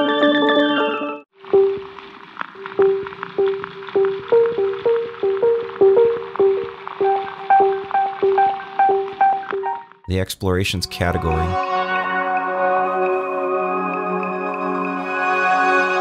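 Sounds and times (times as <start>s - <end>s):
tape hiss: 1.4s - 10.0s.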